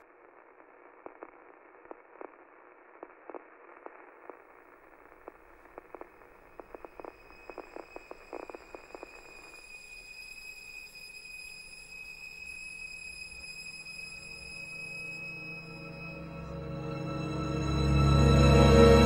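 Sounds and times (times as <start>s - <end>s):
crackling static with clicks: 0.0s - 9.3s.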